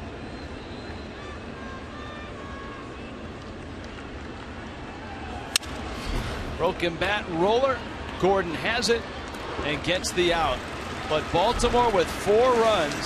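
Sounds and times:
ballpark crowd noise: 0.0 - 13.0.

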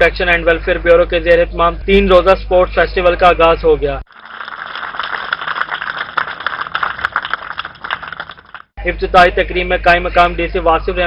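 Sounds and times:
small crowd applauding: 4.1 - 8.7.

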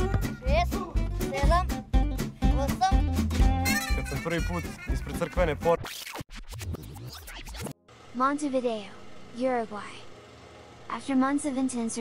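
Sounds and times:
music: 0.0 - 5.8
record scratching: 4.2 - 7.8.

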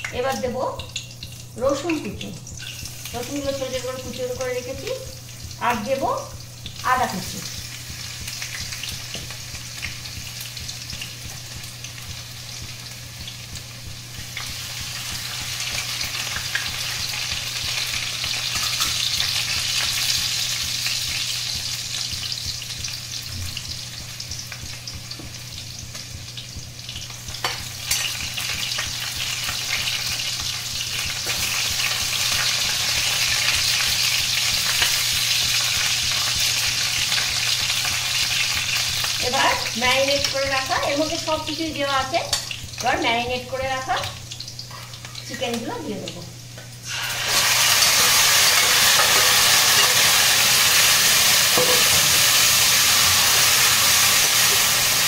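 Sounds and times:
hot oil sizzling: 0.0 - 55.0.

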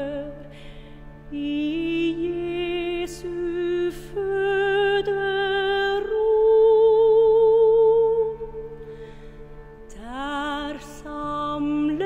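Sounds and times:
cello ensemble chord: 0.0 - 12.0
soprano singing with vibrato: 1.3 - 8.7, 9.9 - 12.0.

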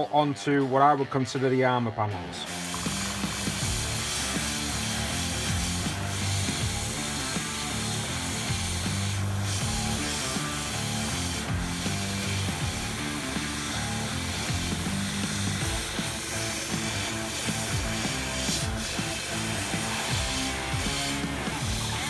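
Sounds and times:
airbrush spraying hiss: 2.4 - 22.0.

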